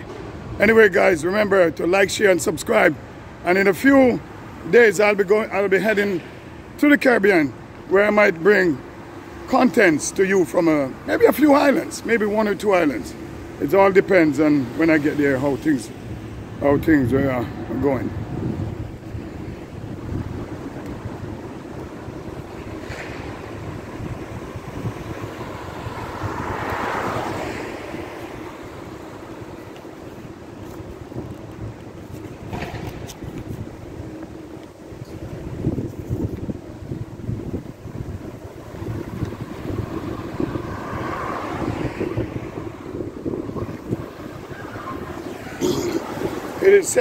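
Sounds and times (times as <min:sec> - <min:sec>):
quiet street ambience: 0:00.0 - 0:47.0
wind buffeting microphone: 0:09.4 - 0:47.0
vehicle passing: 0:10.7 - 0:31.2, 0:36.8 - 0:47.0.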